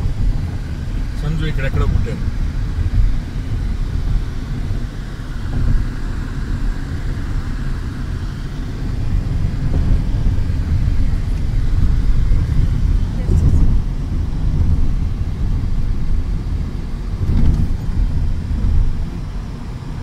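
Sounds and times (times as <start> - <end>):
car interior road rumble: 0.0 - 20.0.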